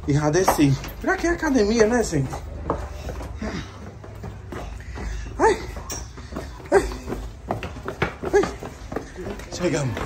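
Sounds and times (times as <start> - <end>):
footsteps on concrete stairs: 0.0 - 10.0.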